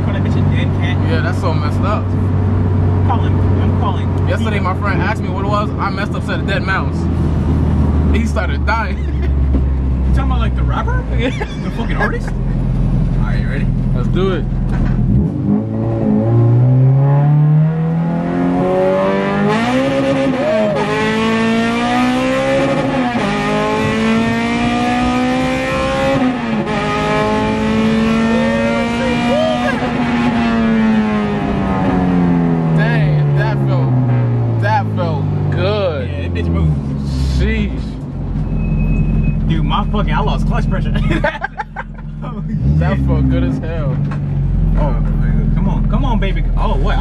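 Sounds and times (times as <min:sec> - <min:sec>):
car engine revving at full throttle: 0:00.0 - 0:47.0.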